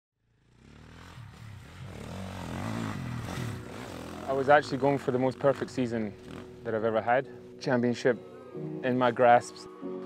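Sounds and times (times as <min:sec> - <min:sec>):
dirt bike engine revving: 0:00.4 - 0:06.7.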